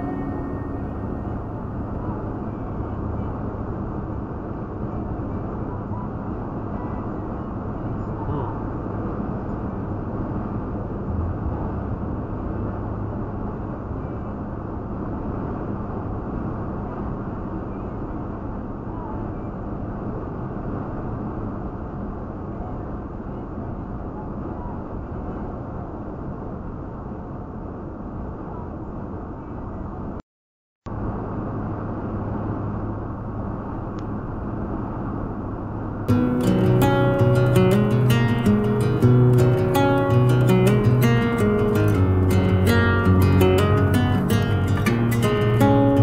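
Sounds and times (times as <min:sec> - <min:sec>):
low engine hum: 0:00.0 - 0:19.2, 0:30.9 - 0:46.0
tyre and road noise: 0:10.2 - 0:13.7, 0:30.9 - 0:46.0.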